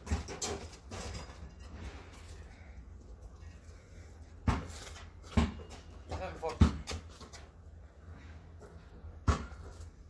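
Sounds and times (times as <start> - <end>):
basketball bouncing on concrete: 0.0 - 0.7, 4.4 - 7.5, 9.1 - 10.0.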